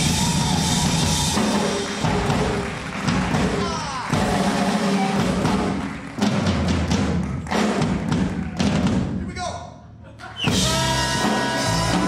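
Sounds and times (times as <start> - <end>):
drum kit solo: 0.0 - 9.4, 10.4 - 12.0.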